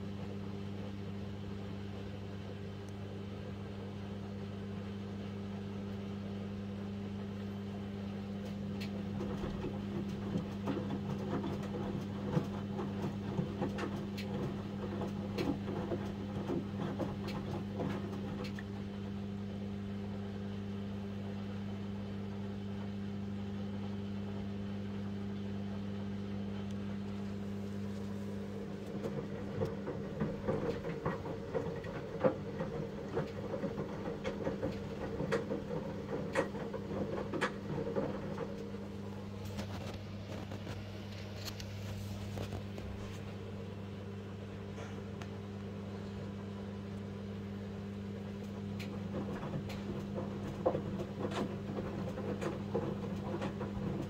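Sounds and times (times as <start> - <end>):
washing machine hum: 0.0 - 54.0
laundry tumbling in drum: 9.0 - 19.0, 27.2 - 43.8, 48.6 - 54.0.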